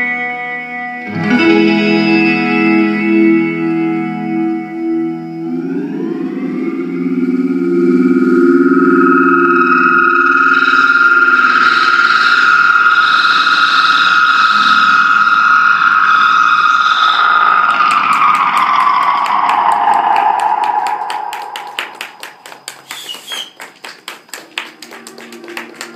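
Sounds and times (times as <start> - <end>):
distorted electric guitar drone: 0.0 - 22.7.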